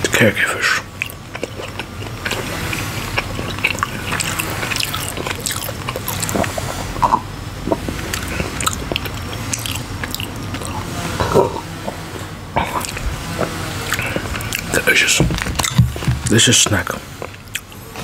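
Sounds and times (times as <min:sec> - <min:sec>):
chewing jerky: 0:00.0 - 0:18.0.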